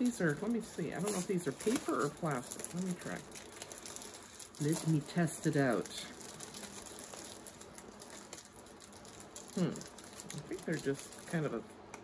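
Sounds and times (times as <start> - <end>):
paper sheet crinkling: 0.0 - 11.6.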